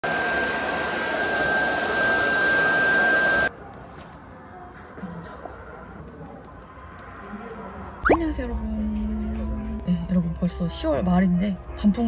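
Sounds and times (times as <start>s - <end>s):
hair dryer blowing with whine: 0.0s - 3.5s.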